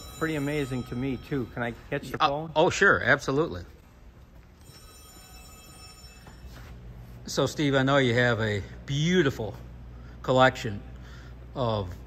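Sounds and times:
phone ringing faintly: 0.0 - 2.4, 4.3 - 7.9.

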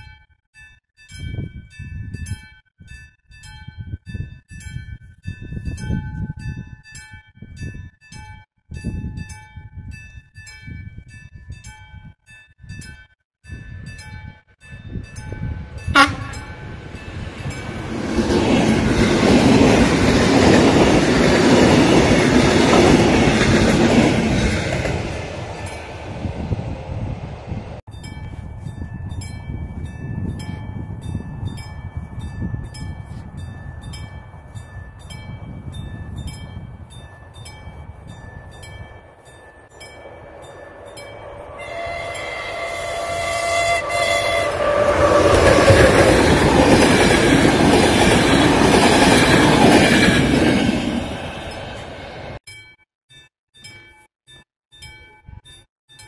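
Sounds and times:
train carriages rumbling past: 15.3 - 27.8, 37.0 - 52.4
train passing loudly: 15.5 - 27.8, 38.5 - 52.4
train horn: 15.9 - 16.6, 41.5 - 46.0.

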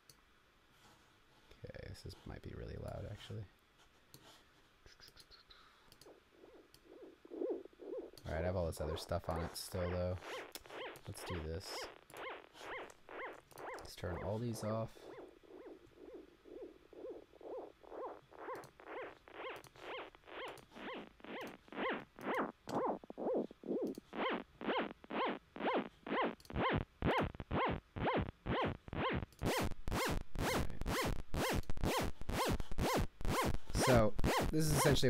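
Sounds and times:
pulsing synth pitch sweeps: 8.8 - 35.0.

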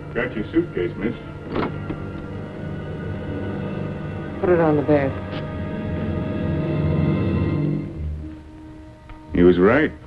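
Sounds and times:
dramatic low held chord: 0.0 - 10.0.

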